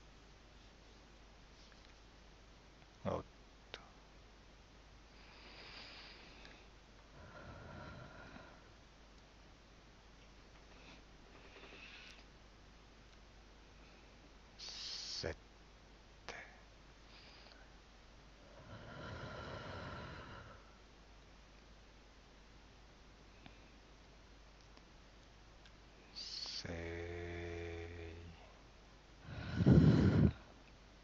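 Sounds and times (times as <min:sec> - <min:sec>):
faint soft hiss: 0:00.0 - 0:31.0
person breathing slowly: 0:05.1 - 0:08.8, 0:18.4 - 0:20.8, 0:29.2 - 0:30.6.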